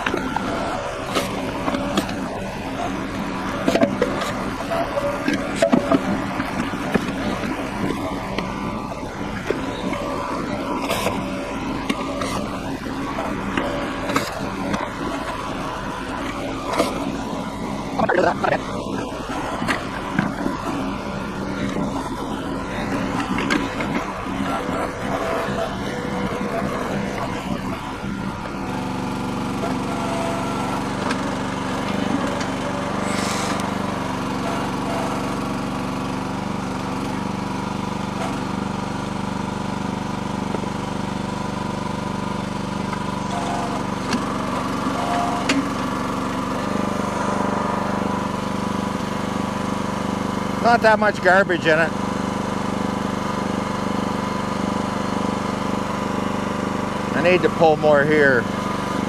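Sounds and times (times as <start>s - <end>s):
bucket digging mud and rocks: 0.0s - 30.2s, 30.9s - 34.0s
small engine running under load: 0.0s - 59.0s.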